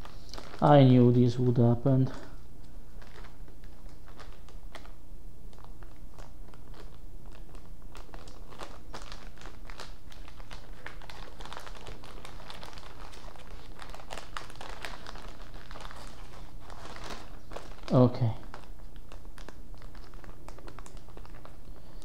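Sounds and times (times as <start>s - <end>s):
plastic bag crinkling: 0.0s - 22.0s
steady low hum: 0.0s - 22.0s.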